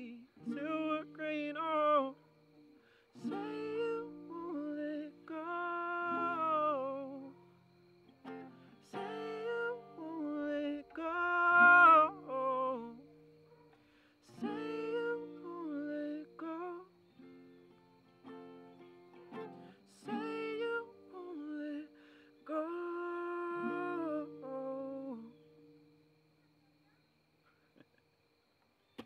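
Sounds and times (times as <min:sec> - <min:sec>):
man singing: 0:00.0 - 0:02.3, 0:03.1 - 0:07.4, 0:08.8 - 0:13.1, 0:14.2 - 0:17.0, 0:19.8 - 0:25.4
acoustic guitar chords: 0:00.0 - 0:26.8.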